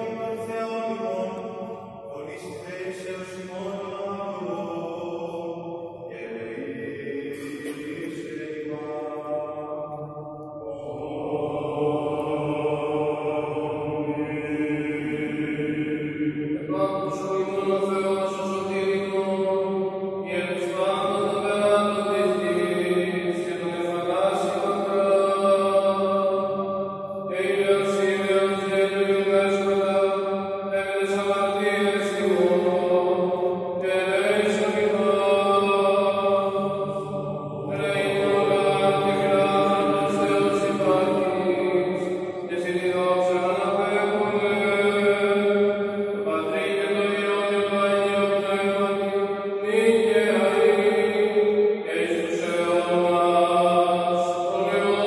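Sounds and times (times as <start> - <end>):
male voices chanting: 0.0 - 55.0.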